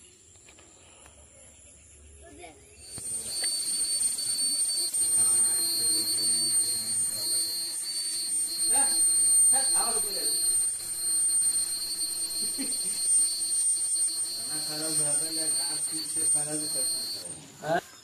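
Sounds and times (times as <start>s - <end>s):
high-pitched electronic whine: 2.8s - 18.0s
indistinct voices: 2.9s - 17.5s.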